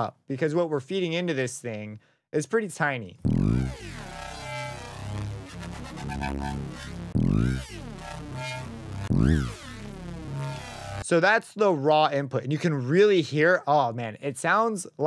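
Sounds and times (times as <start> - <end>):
synth bass with gliding tones: 3.3 - 11.0.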